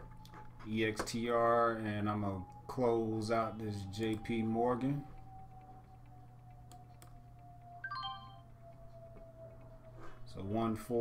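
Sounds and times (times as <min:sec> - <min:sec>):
faint steady hum: 0:00.0 - 0:11.0
faint clicks: 0:05.1 - 0:07.8
electronic alert chime: 0:07.8 - 0:08.5.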